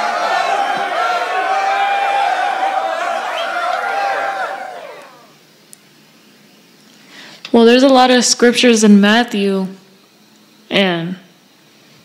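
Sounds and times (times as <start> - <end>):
overlapping voices: 0.0 - 5.3.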